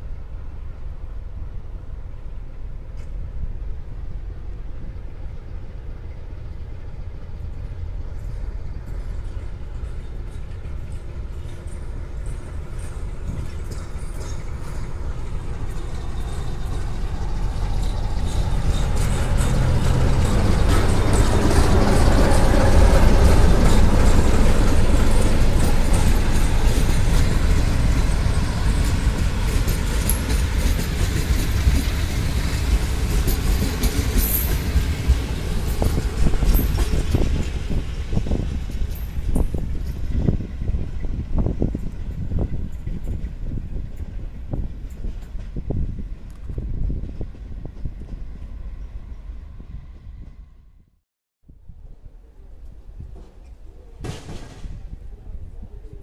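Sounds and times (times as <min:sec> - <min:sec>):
diesel locomotive running under load: 0:00.0 - 0:50.8
train wheels clicking over rail joints: 0:07.4 - 0:48.4, 0:52.9 - 0:55.0.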